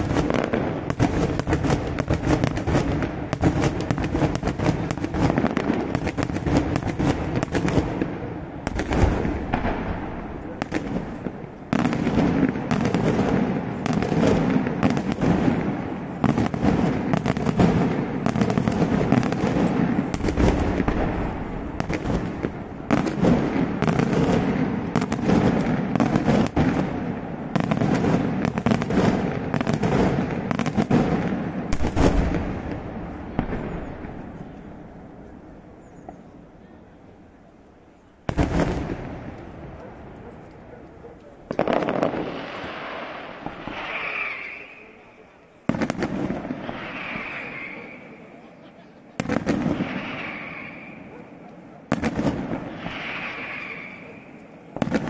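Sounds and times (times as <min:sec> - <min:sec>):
fireworks bangs and bursts: 0:00.0 - 0:35.4, 0:38.2 - 0:55.0
heavy fireworks booms: 0:00.0 - 0:36.3, 0:38.2 - 0:40.7, 0:41.3 - 0:55.0.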